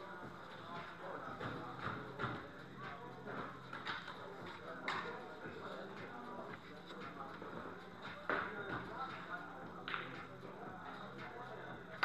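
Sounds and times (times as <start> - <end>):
low background talk: 0.0 - 12.0.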